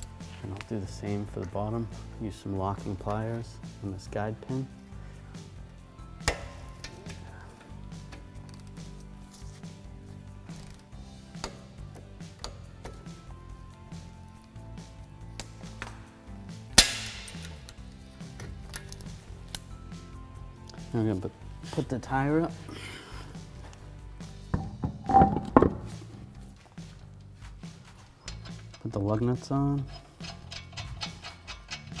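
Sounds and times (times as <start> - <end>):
soft background music: 0.0 - 32.0.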